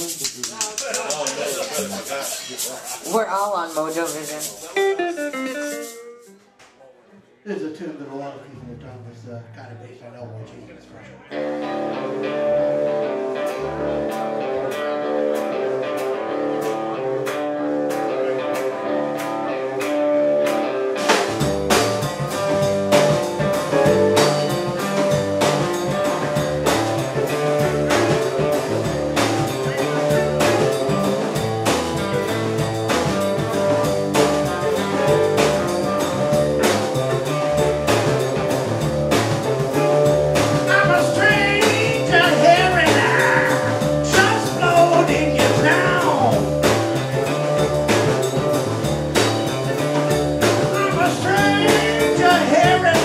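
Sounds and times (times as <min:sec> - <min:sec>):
ticking beat: 0:00.0 - 0:06.4, 0:14.0 - 0:53.0
blues band playing: 0:00.0 - 0:06.6, 0:11.3 - 0:53.0
electric guitar: 0:04.8 - 0:06.5, 0:11.2 - 0:53.0.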